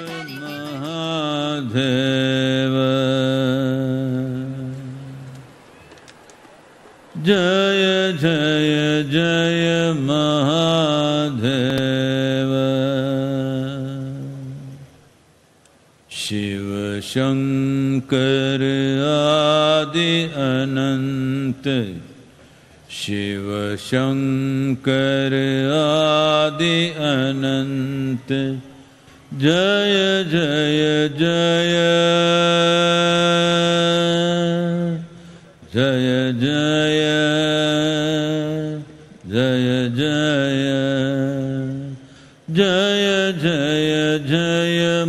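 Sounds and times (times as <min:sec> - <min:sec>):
man chanting: 0:00.0 - 0:05.2, 0:23.0 - 0:45.0.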